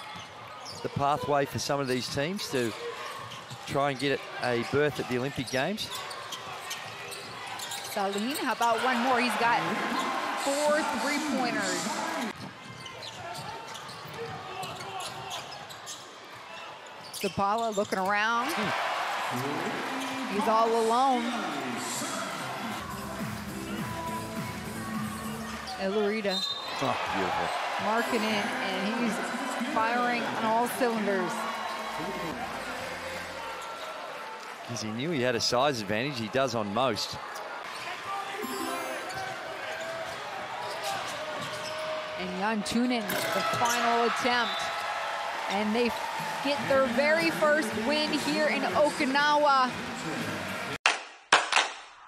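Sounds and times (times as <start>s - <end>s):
arena crowd hum: 0.0s - 50.8s.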